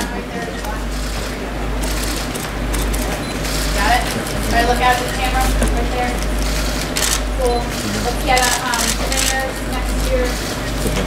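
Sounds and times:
deep low hum: 0:00.0 - 0:11.0.

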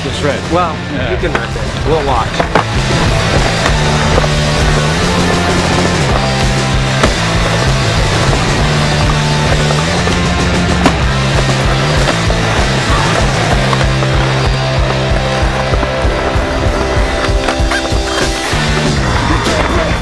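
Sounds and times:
music with bass line: 0:00.0 - 0:20.0
skateboard wheels rolling on concrete: 0:00.0 - 0:20.0
skateboard clacks: 0:01.3 - 0:20.0.

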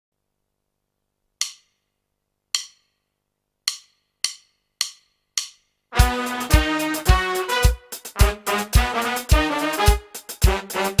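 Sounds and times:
wood block count-in clicks: 0:01.4 - 0:01.8
band playing: 0:05.9 - 0:11.0.

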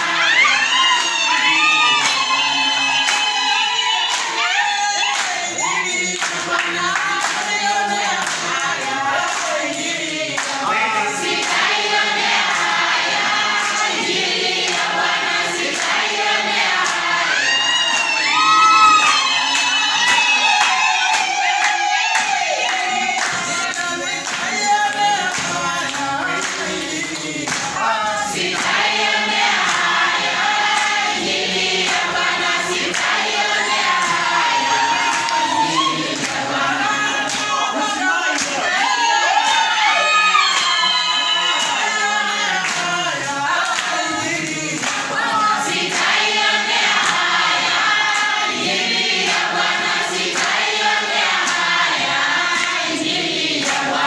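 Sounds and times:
congregation singing a hymn: 0:00.0 - 0:54.0
hand clapping: 0:00.9 - 0:03.4, 0:04.1 - 0:17.1, 0:17.9 - 0:36.6, 0:37.2 - 0:39.8, 0:40.4 - 0:54.0.

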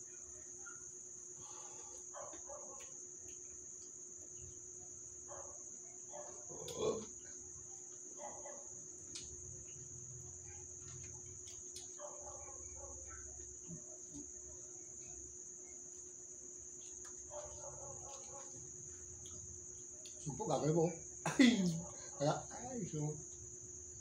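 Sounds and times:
crickets chirring: 0:00.0 - 0:24.0
faint steady hum: 0:00.0 - 0:24.0.

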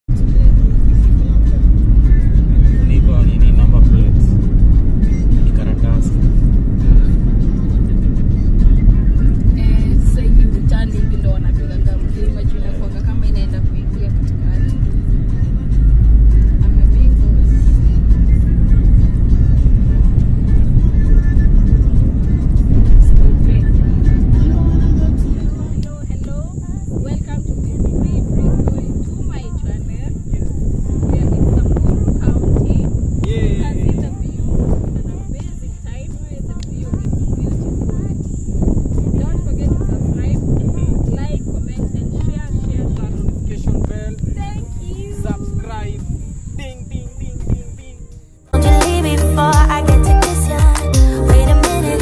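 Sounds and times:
road and engine rumble: 0:00.0 - 0:52.0
faint music: 0:00.1 - 0:52.0.

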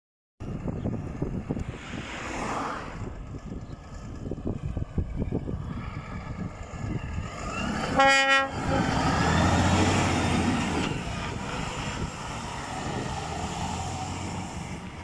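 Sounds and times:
truck diesel engine rumbling: 0:00.4 - 0:15.0.

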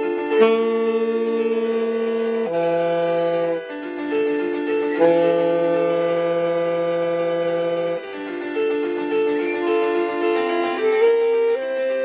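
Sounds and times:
electronic keyboard chord: 0:00.0 - 0:12.0.

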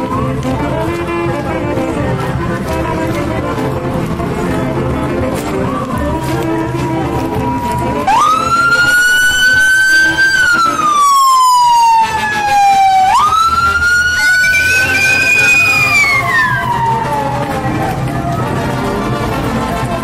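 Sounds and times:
faint music: 0:00.0 - 0:20.0
siren wailing: 0:05.6 - 0:18.8.

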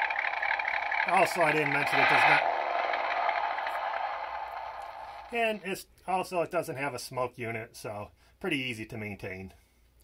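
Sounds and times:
steady speaker hiss: 0:04.5 - 0:10.0.

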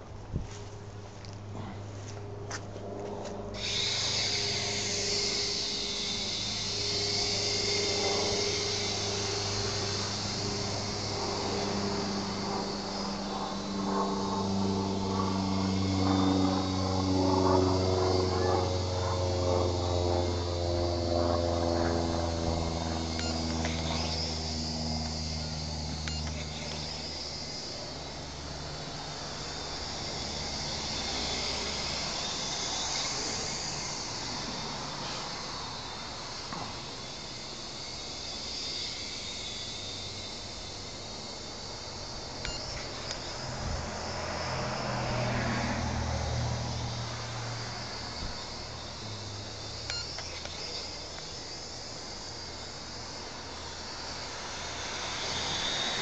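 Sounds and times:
drone motors whining: 0:00.0 - 0:56.0.

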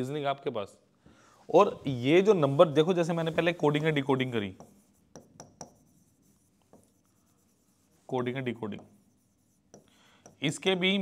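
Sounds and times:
pen writing on a board: 0:04.4 - 0:10.5.

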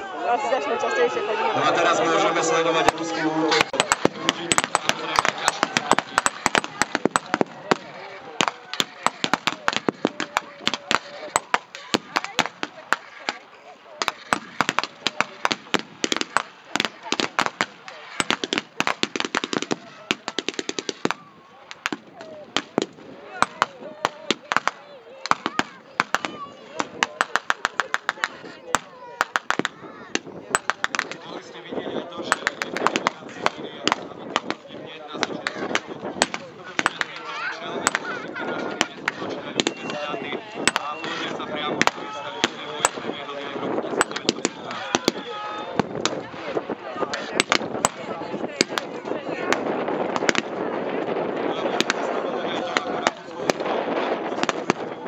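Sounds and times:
rapid strings of gunshots: 0:02.7 - 0:13.4, 0:14.0 - 0:31.3, 0:32.2 - 0:45.2, 0:47.1 - 0:55.0.

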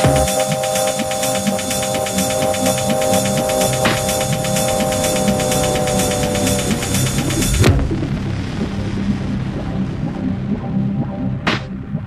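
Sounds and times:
fast hi-hat ticks: 0:00.0 - 0:07.7
held synth chord: 0:00.0 - 0:09.8
bass pulse: 0:00.0 - 0:12.0
techno track: 0:00.0 - 0:12.0.

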